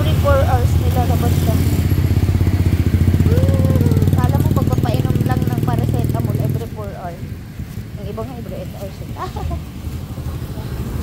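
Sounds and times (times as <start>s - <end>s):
motorcycle engine idling: 0.0s - 8.7s.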